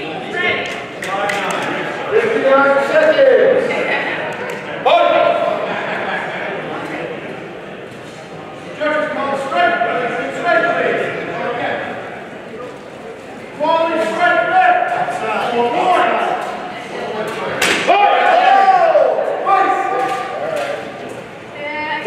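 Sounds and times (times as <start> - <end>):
voices echoing in a hall: 0.0 - 22.0.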